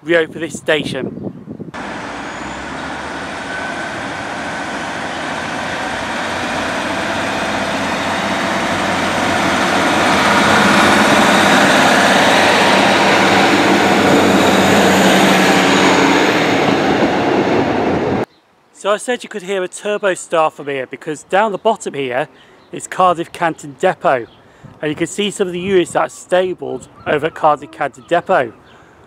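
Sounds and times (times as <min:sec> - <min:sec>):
diesel train passing: 0:01.8 - 0:18.3
train wheels on rails: 0:01.8 - 0:18.3.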